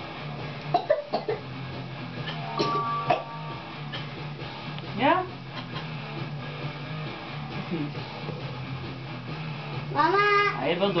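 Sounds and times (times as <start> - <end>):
faint background music: 0.0 - 11.0
person coughing: 0.7 - 1.4, 2.6 - 3.3.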